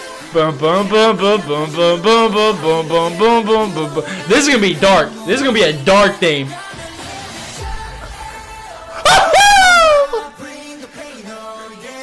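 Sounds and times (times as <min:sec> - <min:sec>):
background music: 0:00.0 - 0:12.0
man's high-pitched wail: 0:09.0 - 0:10.4.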